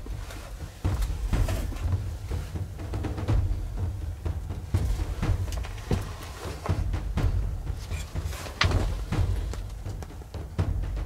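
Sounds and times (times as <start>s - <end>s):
music with deep drums: 0.0s - 11.0s.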